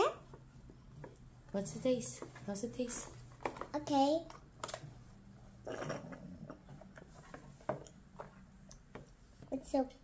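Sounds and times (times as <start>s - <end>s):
child sipping through straw: 5.6s - 7.0s.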